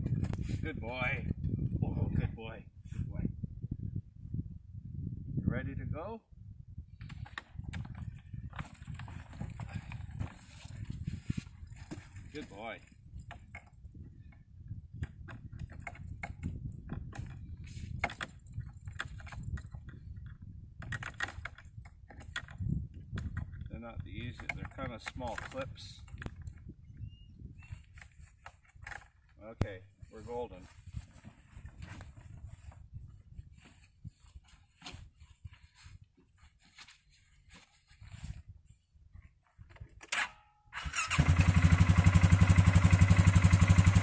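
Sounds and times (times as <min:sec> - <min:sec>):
rustling: 0:29.9 - 0:39.6.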